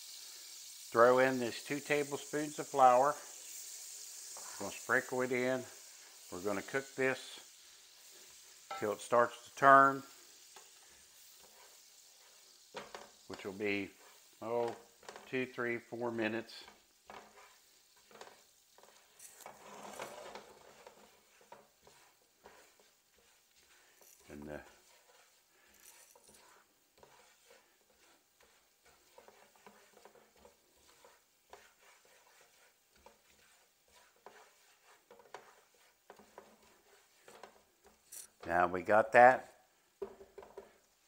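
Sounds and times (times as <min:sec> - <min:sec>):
light sizzle: 0:00.0 - 0:41.0
utensil scraping a frying pan: 0:00.1 - 0:38.5.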